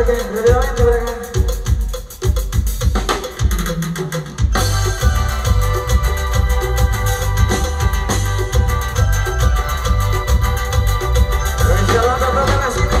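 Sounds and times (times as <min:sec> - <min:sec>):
drum kit steady beat: 0:00.0 - 0:13.0
live band dance music: 0:00.0 - 0:13.0.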